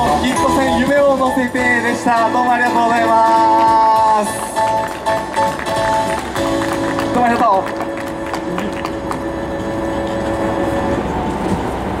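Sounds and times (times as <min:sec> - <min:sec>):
railway station rumble and hum: 0:00.0 - 0:12.0.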